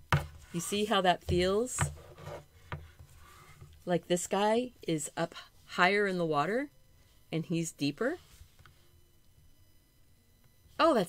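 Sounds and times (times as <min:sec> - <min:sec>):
paper board rubbing on tabletop: 0:01.3 - 0:03.4.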